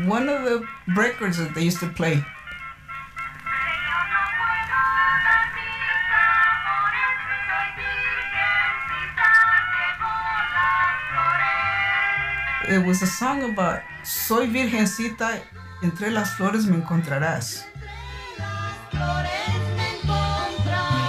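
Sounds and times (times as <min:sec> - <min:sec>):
old phonograph record melody: 0:00.0 - 0:21.0.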